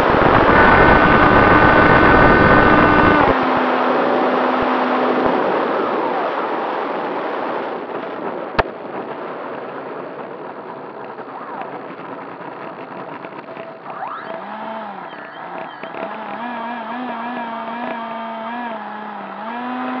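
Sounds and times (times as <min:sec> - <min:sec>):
rushing fan and airflow noise: 0:00.0 - 0:20.0
wavering tone: 0:13.6 - 0:18.9.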